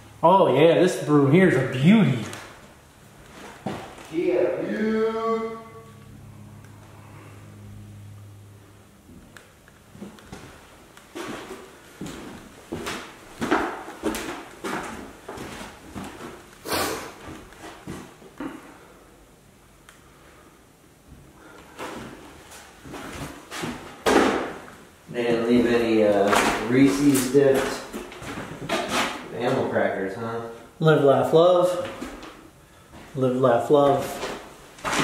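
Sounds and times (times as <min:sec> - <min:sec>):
footsteps on wooden floor: 0:09.9 - 0:16.4.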